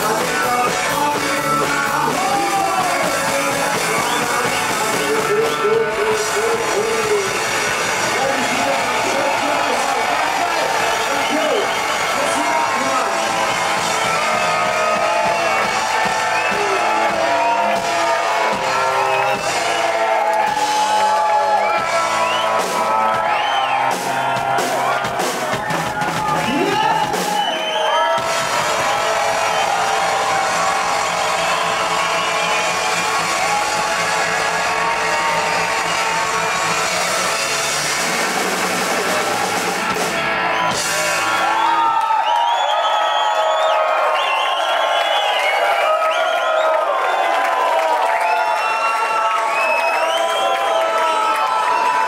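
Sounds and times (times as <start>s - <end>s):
live dub band playing: 0.0s - 42.2s
crowd whooping and shouting: 0.0s - 52.0s.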